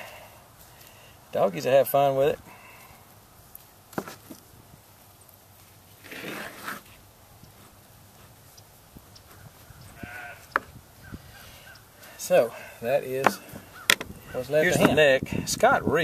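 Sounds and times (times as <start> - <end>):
sheep bleating: 10.0 - 10.6.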